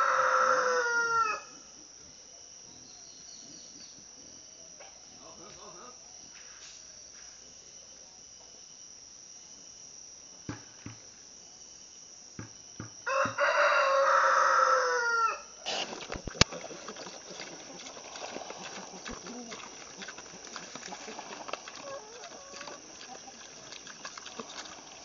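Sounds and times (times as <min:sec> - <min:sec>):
rooster crowing: 0:00.0 - 0:01.6, 0:13.0 - 0:15.6, 0:20.7 - 0:23.4.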